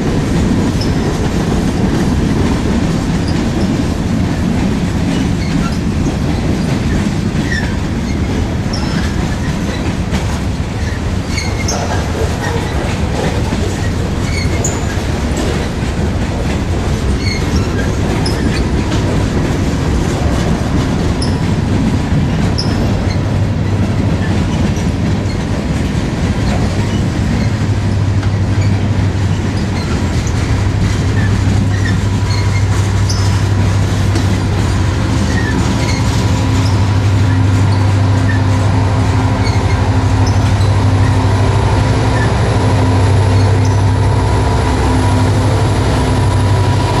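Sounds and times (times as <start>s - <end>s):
diesel locomotive hum: 0.0s - 47.0s
train wheels rumbling on rails: 0.0s - 47.0s
high wheel squeaks: 5.1s - 10.0s, 10.8s - 15.1s, 17.1s - 19.1s, 21.2s - 21.6s, 22.3s - 25.5s, 26.4s - 47.0s.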